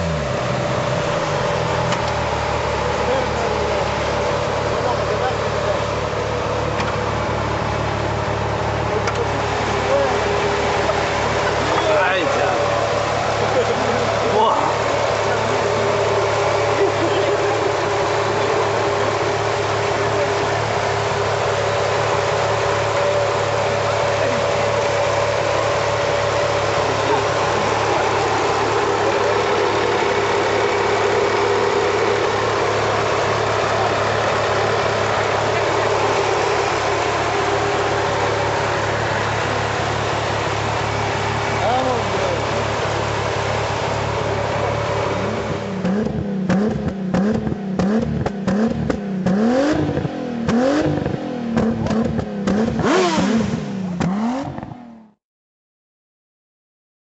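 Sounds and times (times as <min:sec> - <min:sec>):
car engine idling and revving: 0:00.0 - 0:55.2.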